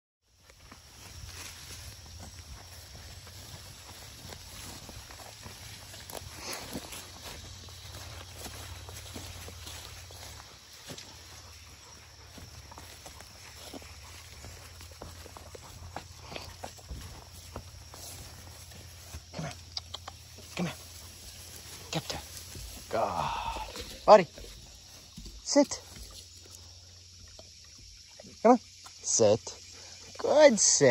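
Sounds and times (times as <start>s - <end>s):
footsteps through undergrowth: 0.3s - 26.8s
small crackles of twigs: 12.3s - 26.7s.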